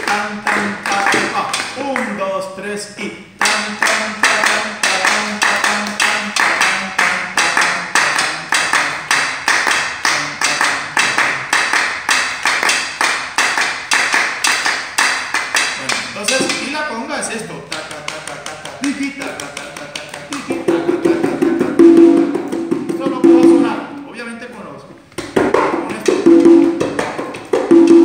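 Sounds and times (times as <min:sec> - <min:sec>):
drumsticks striking drums: 0:15.6 - 0:16.8
person speaking: 0:15.8 - 0:20.9, 0:22.9 - 0:25.0.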